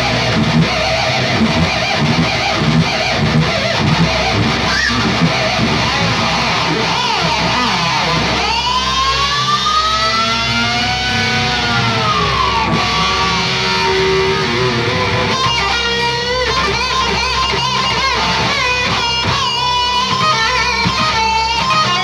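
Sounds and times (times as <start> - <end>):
distorted electric guitar solo: 0.0 - 22.0
heavy metal band playing live: 0.0 - 22.0.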